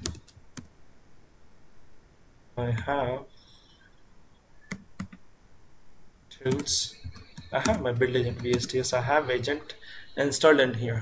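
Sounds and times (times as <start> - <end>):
laptop keyboard clicks: 0.0 - 0.7.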